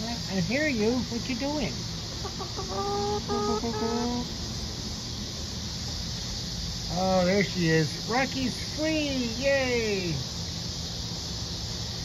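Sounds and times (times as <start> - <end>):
chicken calling: 2.0 - 4.4.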